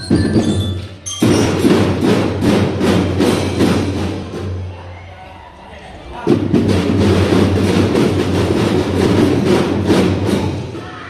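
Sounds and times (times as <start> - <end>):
drum band drum roll: 0.0 - 5.1, 6.1 - 11.0.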